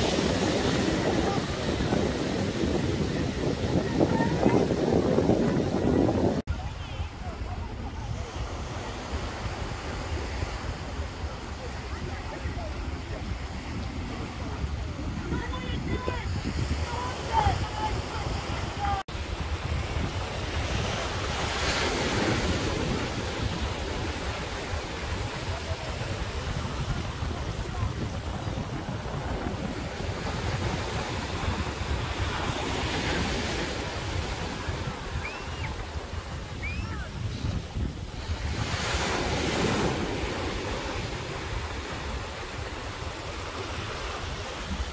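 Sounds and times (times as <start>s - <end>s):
small waves breaking on sand: 0.0s - 44.9s
surf washing onto beach: 0.0s - 44.9s
wind buffeting microphone: 0.0s - 44.9s.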